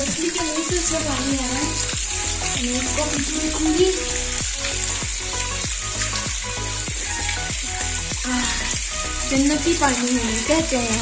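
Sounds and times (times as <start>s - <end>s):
background music with steady beat: 0.0s - 11.0s
water splashing into stone tank: 0.0s - 11.0s.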